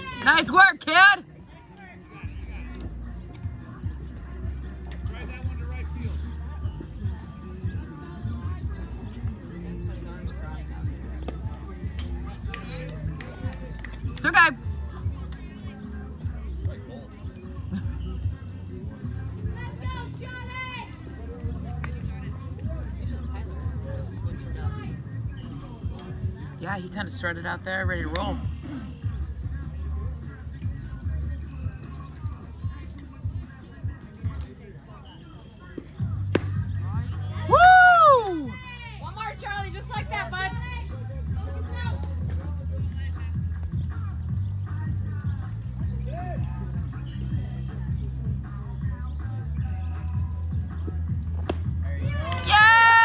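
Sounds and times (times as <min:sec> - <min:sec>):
spectators talking: 0:00.0 - 0:53.0
baseball smacking into mitt: 0:36.3 - 0:36.6, 0:51.4 - 0:51.8.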